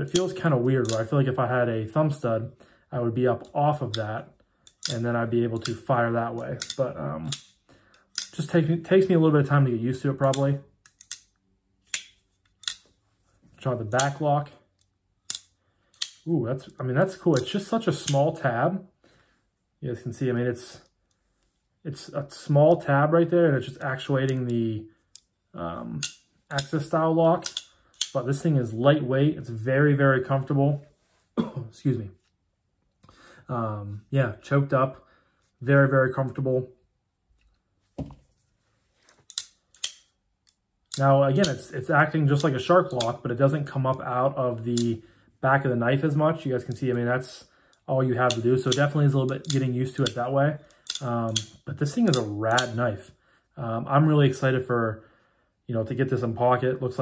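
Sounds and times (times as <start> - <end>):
folding knife clicking: 6.6 - 8.4, 10.2 - 11.3, 11.9 - 12.9, 14.8 - 16.3, 26.0 - 28.2, 39.2 - 41.6, 48.3 - 52.7.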